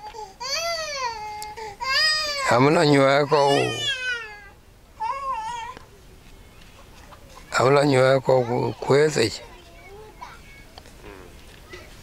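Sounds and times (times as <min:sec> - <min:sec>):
high-pitched crying calls: 0:00.0 - 0:05.8.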